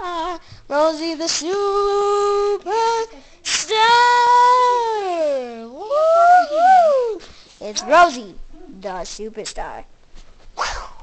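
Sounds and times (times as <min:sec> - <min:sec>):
woman singing wordless notes: 0:00.0 - 0:08.2.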